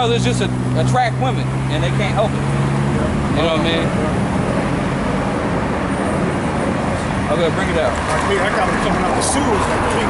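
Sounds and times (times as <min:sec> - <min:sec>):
cars passing on street: 0:00.0 - 0:10.0.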